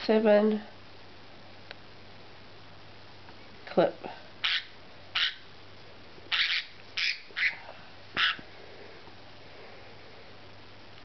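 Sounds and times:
cockatiel squawking: 4.4s - 5.5s, 6.3s - 7.6s, 8.2s - 8.4s.

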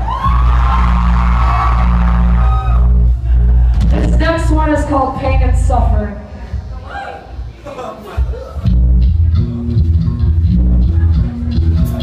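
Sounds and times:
steady low drone: 0.3s - 6.8s
live rock band: 8.6s - 12.0s.

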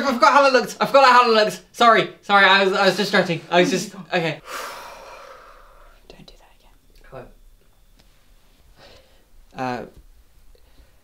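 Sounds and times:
woman's breathy exhale: 4.4s - 6.0s
faint whispers: 4.7s - 7.2s.

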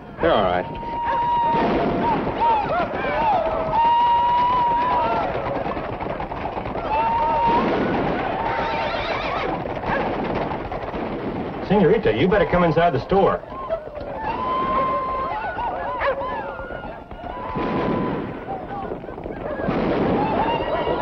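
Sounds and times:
horses galloping: 0.0s - 21.0s
riders whooping and yelling: 0.1s - 10.2s, 13.4s - 21.0s.

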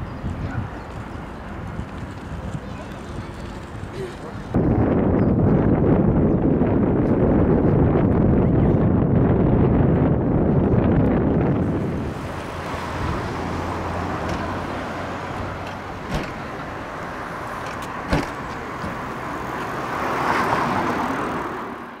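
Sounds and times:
passing road traffic: 0.0s - 22.0s.

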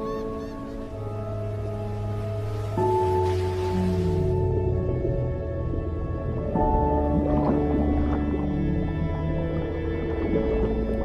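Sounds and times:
slow background music: 0.0s - 11.0s.

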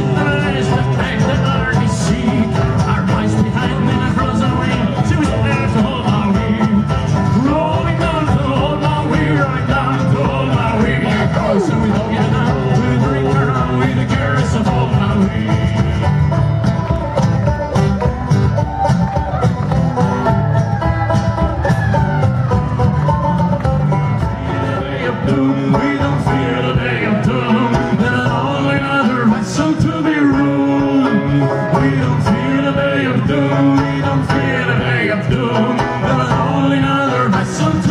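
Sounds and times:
acoustic guitar: 0.0s - 37.9s
banjo: 0.0s - 37.9s
frame drum beat: 0.0s - 37.9s.

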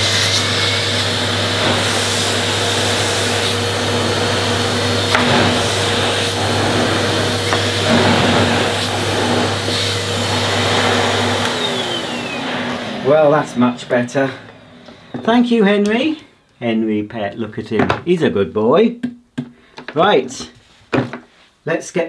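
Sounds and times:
vacuum cleaner running on carpet: 0.0s - 15.2s.

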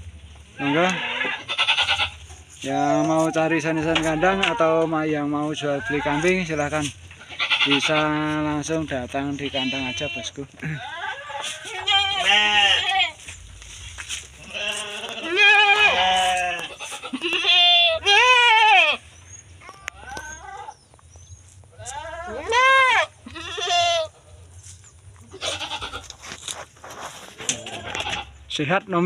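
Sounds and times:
goats bleating: 0.5s - 13.4s, 14.0s - 20.8s, 21.7s - 26.5s, 27.4s - 28.4s.

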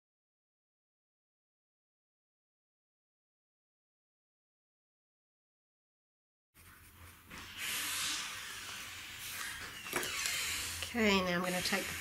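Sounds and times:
pencil shading on paper: 7.4s - 12.0s
woman's voice: 10.9s - 12.0s.

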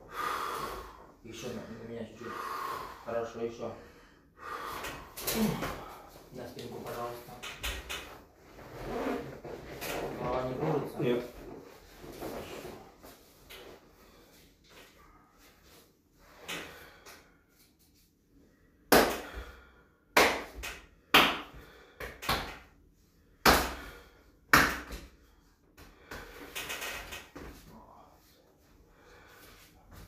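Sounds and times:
rustle of clothing and bedding: 8.1s - 14.0s.

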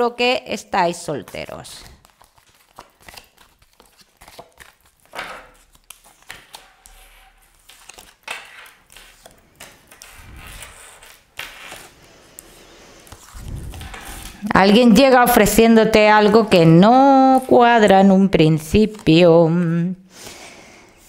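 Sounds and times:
cards rustling: 1.1s - 15.2s, 18.5s - 20.4s.

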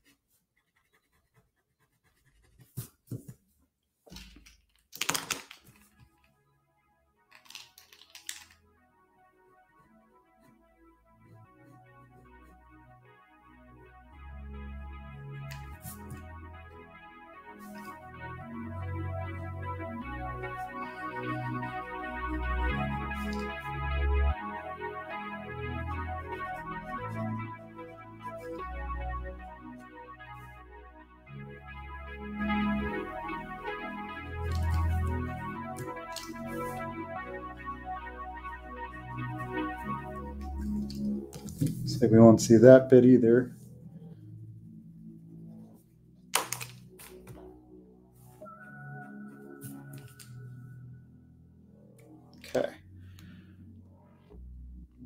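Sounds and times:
keyboard chords over bass line: 9.2s - 55.0s.

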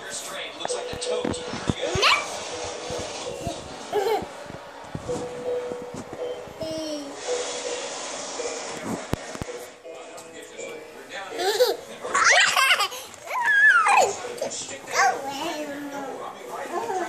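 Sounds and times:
faint television voices: 0.0s - 5.3s, 8.4s - 17.0s
television music: 0.0s - 17.0s.

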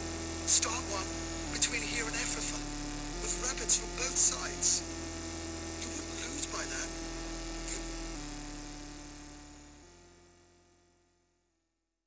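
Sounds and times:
modular synthesizer drone: 0.0s - 10.4s.

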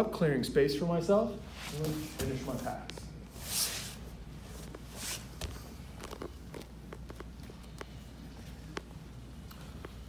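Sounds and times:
low room hum: 0.0s - 10.0s
fabric swish: 3.3s - 5.4s
soft taps and rustles on mat: 4.5s - 8.0s.

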